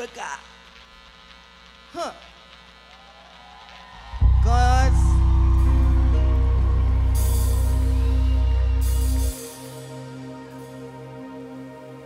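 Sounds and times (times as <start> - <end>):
man's voice: 4.2 - 5.3.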